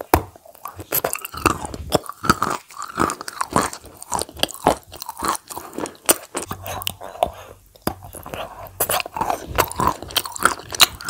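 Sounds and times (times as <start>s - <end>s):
mouth clicks and smacks: 0.0s - 11.0s
person biting and chewing food: 0.0s - 11.0s.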